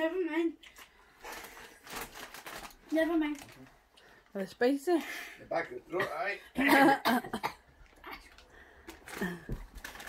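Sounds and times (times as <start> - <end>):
person coughing: 6.0 - 8.3.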